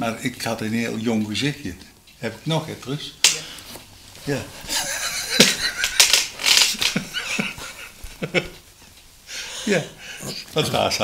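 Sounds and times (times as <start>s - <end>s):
breathy laughter: 6.8s - 8.6s.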